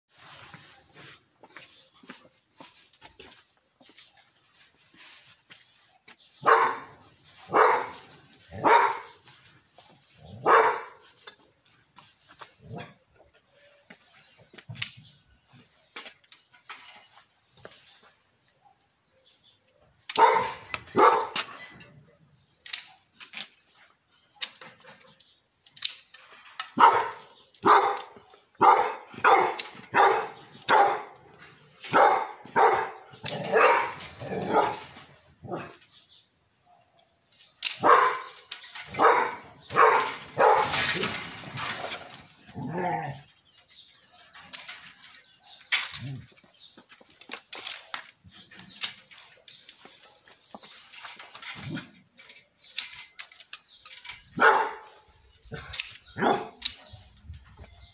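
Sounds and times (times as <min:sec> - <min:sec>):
dog barking: 0:06.4 - 0:08.0, 0:08.6 - 0:09.2, 0:10.4 - 0:11.0, 0:20.1 - 0:21.4, 0:26.8 - 0:31.2, 0:31.9 - 0:34.9, 0:37.8 - 0:40.8, 0:54.4 - 0:54.9, 0:56.2 - 0:56.6
pruning shears snipping: 0:22.6 - 0:23.6, 0:25.6 - 0:27.2.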